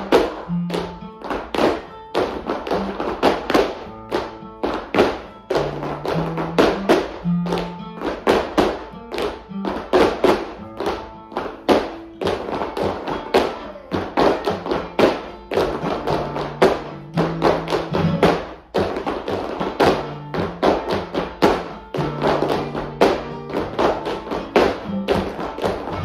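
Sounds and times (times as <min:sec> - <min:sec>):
flamenco music: 0:00.0 - 0:26.0
shoes tapping on wooden floor: 0:00.0 - 0:26.0.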